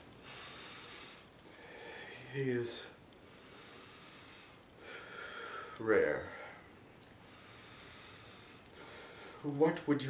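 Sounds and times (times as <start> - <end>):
person breathing: 0.0 - 9.6.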